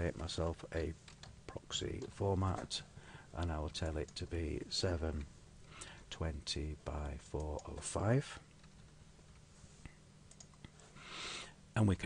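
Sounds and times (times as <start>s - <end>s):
keyboard and mouse clicks: 10.3s - 10.7s.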